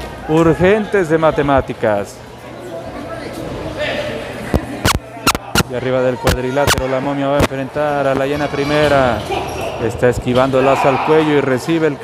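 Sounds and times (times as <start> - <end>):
murmur of voices in a hall: 0.0 - 12.0.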